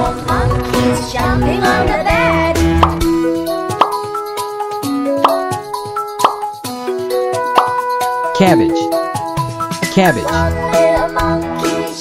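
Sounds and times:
plinking children's tune: 0.0 - 12.0.

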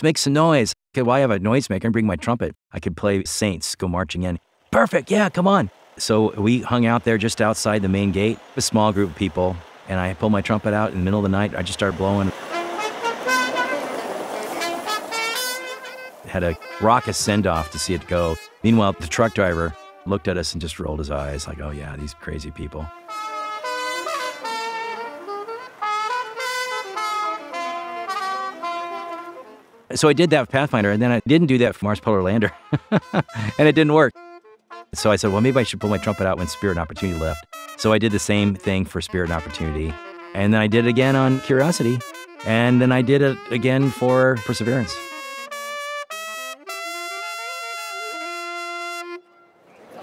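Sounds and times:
solo trumpet melody: 6.1 - 49.6.

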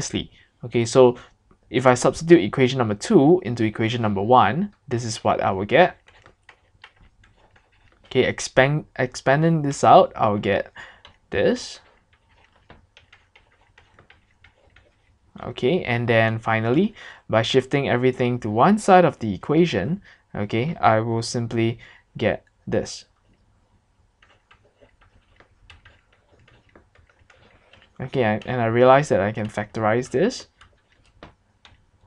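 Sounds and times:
stylus tapping on pen tablet: 24.2 - 28.5, 30.6 - 31.9.

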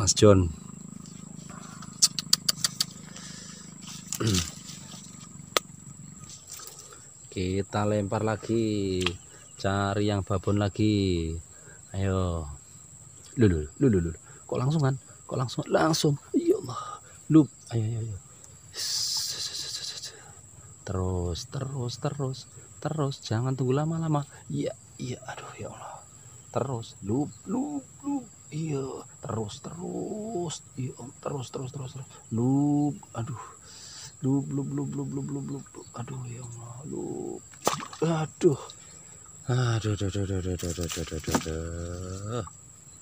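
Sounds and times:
high-pitched insect drone: 0.0 - 43.0.

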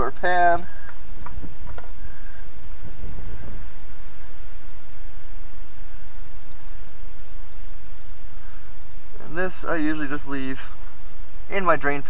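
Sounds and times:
loud steady hiss: 0.0 - 12.0.

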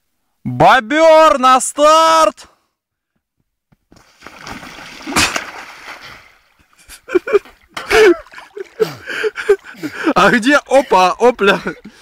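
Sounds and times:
water splash: 4.0 - 6.6
loud smack on water: 4.4 - 6.0.

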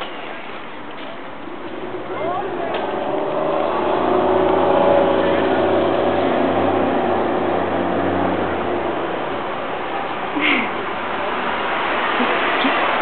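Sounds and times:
vehicle engine droning: 0.0 - 13.0.

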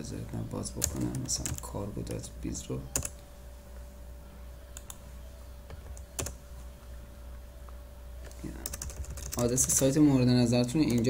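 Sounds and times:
faint steady hum: 0.0 - 11.0
computer keyboard keystrokes: 8.6 - 9.9.

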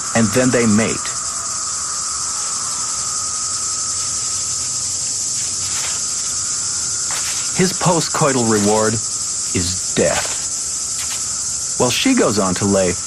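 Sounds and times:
cicadas buzzing: 0.0 - 13.0
low steady drone: 0.0 - 13.0.

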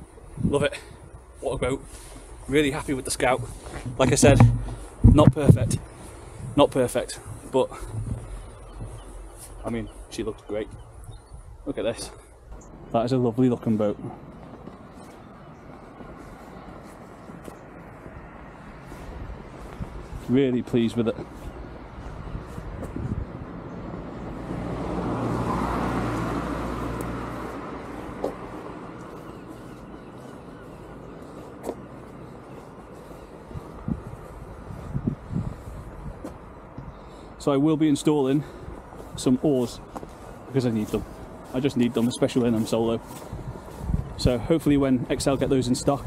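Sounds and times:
outdoor background rumble: 0.0 - 46.0
soft low knocks: 3.8 - 5.8, 7.2 - 9.9.

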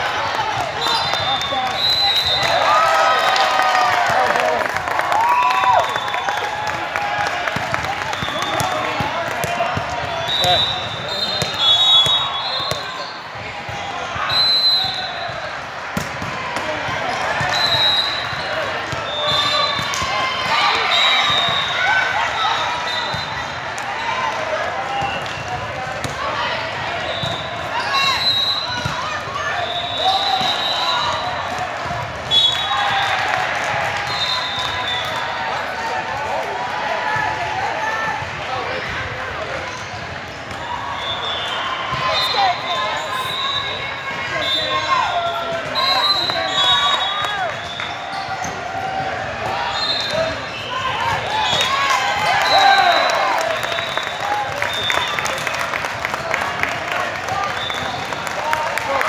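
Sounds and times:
overlapping voices in echoing hall: 0.0 - 59.0.

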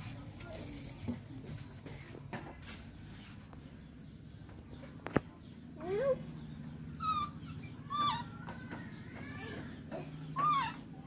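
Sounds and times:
baby monkey high calls: 5.8 - 11.0.

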